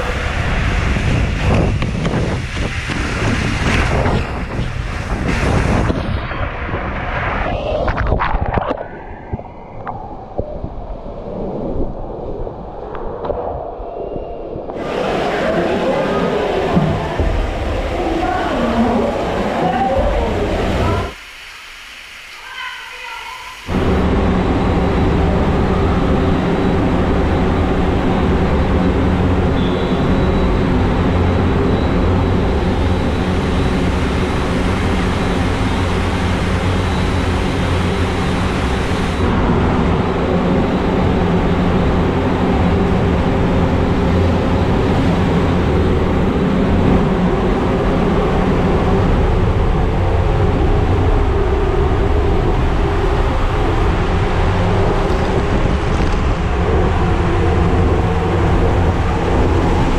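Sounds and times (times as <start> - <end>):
blower whirring drone: 0.0 - 59.9.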